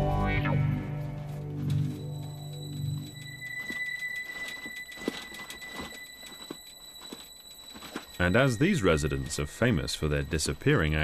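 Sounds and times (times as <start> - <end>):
faint steady high tone: 0.0 - 11.0.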